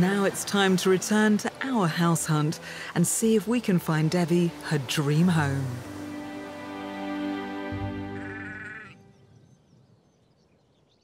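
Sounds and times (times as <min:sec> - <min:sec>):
background music: 0:00.0 - 0:09.6
sheep bleating: 0:08.0 - 0:09.0.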